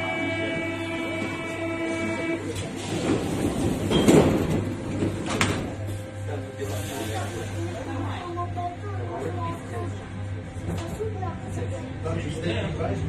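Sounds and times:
train rail noise: 0.0 - 13.0.

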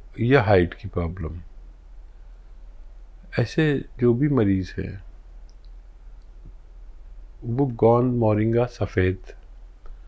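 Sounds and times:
steady low hum: 0.0 - 10.0
faint short clicks: 5.5 - 6.6.

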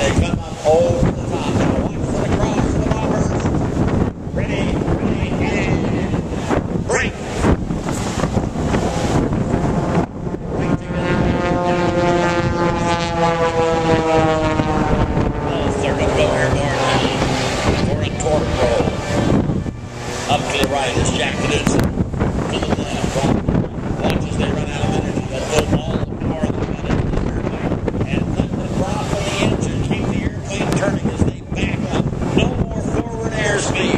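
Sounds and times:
propeller airplane engines droning: 0.0 - 33.9
wind buffeting microphone: 0.0 - 33.9.

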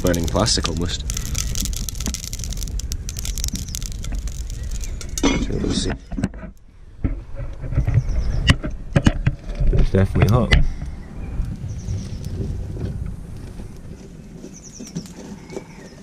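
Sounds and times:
low rumble: 0.0 - 5.9, 8.0 - 14.4
wood fire crackling: 0.0 - 16.0.

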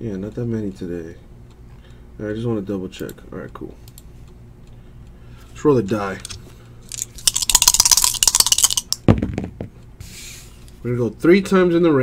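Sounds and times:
dice rattling in hands: 6.9 - 9.0.

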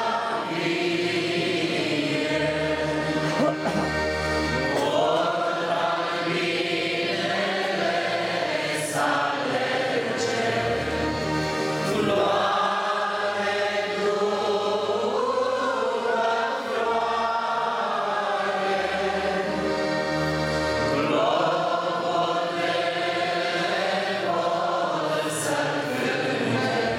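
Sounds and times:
congregation singing a hymn: 0.0 - 26.9.

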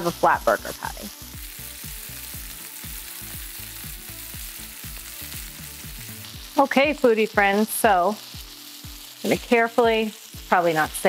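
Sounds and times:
burger patties sizzling in skillet: 0.0 - 11.0.

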